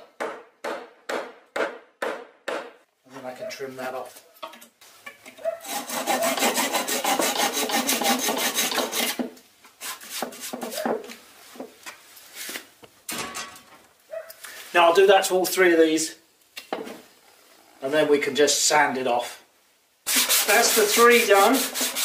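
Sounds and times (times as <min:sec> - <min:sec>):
saw scrapes: 0:05.6 - 0:09.2, 0:20.1 - 0:22.0
hand saw cutting wood: 0:05.6 - 0:10.8, 0:20.1 - 0:22.0.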